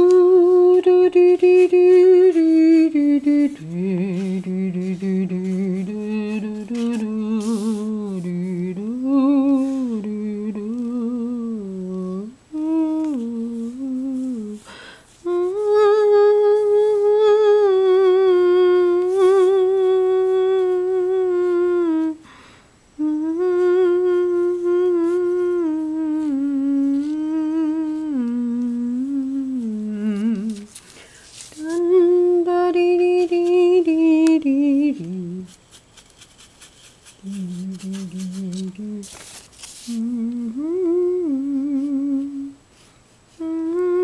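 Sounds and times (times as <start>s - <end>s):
person humming a slow tune: 0.0s - 30.8s, 31.6s - 35.6s, 37.2s - 39.2s, 39.8s - 42.7s, 43.3s - 44.0s.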